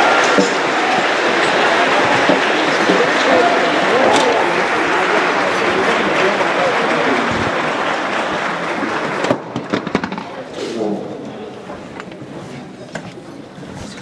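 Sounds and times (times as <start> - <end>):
audience applause: 0.0 - 11.5
people chattering: 0.0 - 14.0.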